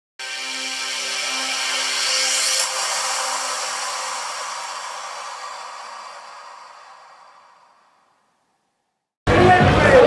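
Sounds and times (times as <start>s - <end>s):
shimmering electronic logo sting: 0.2s - 8.2s.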